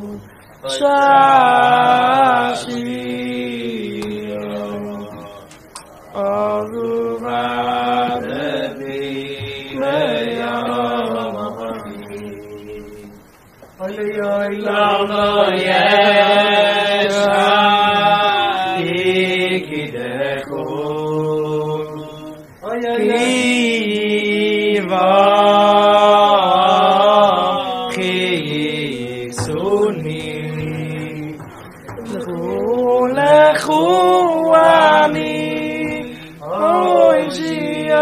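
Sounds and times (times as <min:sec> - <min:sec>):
men singing wordless melody: 0:00.0 - 0:38.0.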